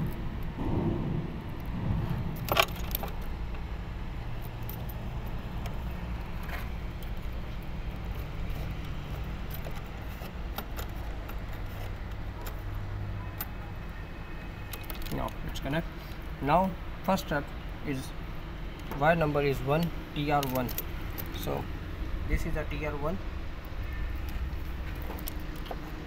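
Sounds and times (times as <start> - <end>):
steady low rumble: 0.0 - 13.9
wires clicking and clinking: 1.4 - 14.0, 14.6 - 16.3, 18.8 - 21.6, 23.6 - 26.0.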